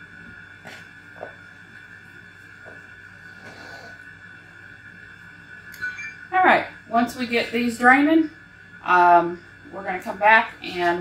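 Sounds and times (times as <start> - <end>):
faint hum with high tone: 0.0 - 11.0
woman's voice: 6.3 - 11.0.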